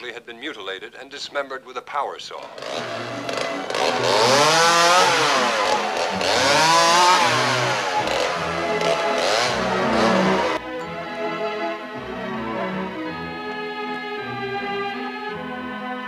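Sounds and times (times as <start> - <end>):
chainsaw revving: 2.4 - 10.6.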